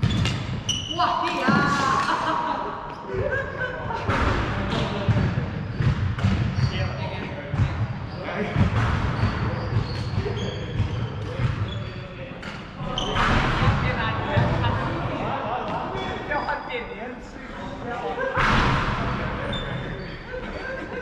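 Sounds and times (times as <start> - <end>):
sports shoes squeaking: 0.0 - 1.8, 4.7 - 14.9, 15.9 - 17.0, 19.4 - 21.0.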